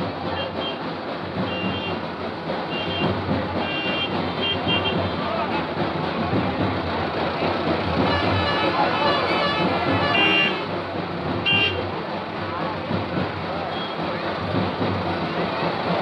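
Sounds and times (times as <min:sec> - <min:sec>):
crowd chatter: 0:00.0 - 0:16.0
vehicle running: 0:00.0 - 0:16.0.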